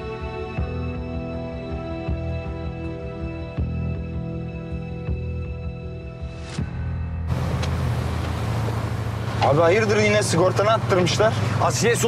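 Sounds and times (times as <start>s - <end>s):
soft music: 0.0s - 11.2s
car engine hum: 6.7s - 12.0s.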